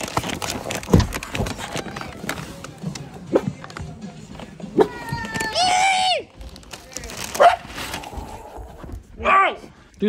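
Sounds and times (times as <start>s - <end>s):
paper bag rustling: 0.0s - 3.8s, 6.3s - 9.1s
dog barking: 7.4s - 7.7s.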